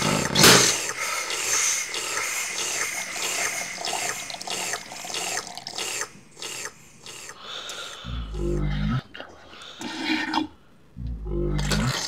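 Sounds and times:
liquid gushing through pipes: 0.0 - 7.3.

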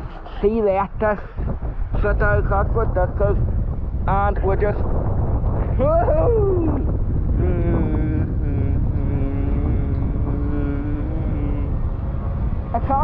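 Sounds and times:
wind buffeting microphone: 0.0 - 13.0
man humming mmm: 7.3 - 11.9.

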